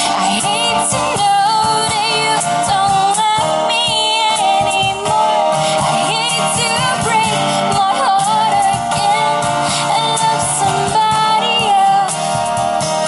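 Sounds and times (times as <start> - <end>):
woman singing: 0.0 - 12.5
cajon: 0.0 - 13.0
strummed acoustic guitar: 0.0 - 13.0.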